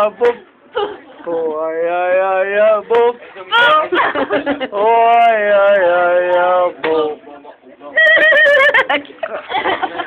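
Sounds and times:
girl squealing laugh: 0:08.0 - 0:08.9.

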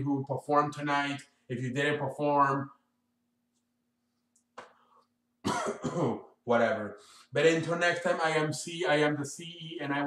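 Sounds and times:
man coughing: 0:05.4 - 0:06.4.

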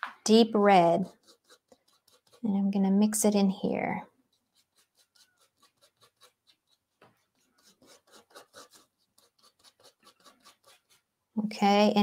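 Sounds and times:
palette knife scraping paint: 0:00.5 - 0:11.1.

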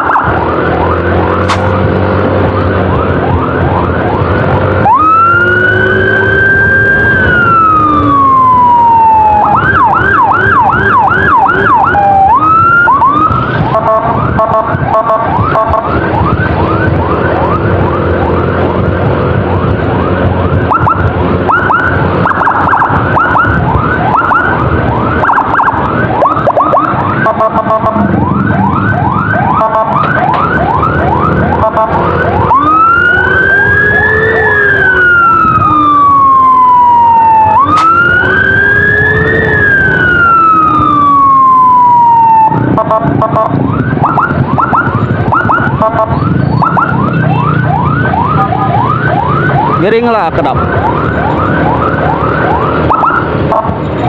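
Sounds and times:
engine and road noise: 0:00.0 - 0:54.0
second siren sweeps: 0:00.0 - 0:54.0
siren wailing and yelping: 0:00.0 - 0:54.0.

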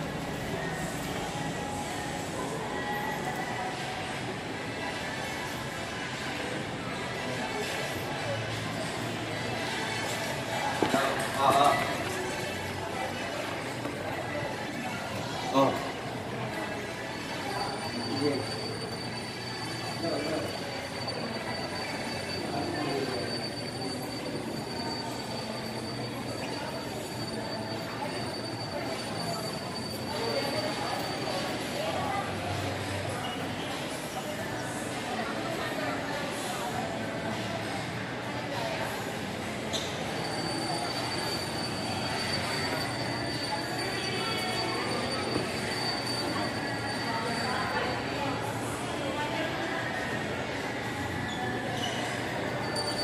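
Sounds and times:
murmur of many voices echoing: 0:00.0 - 0:53.0
shopping mall ambience hum: 0:00.0 - 0:53.0.

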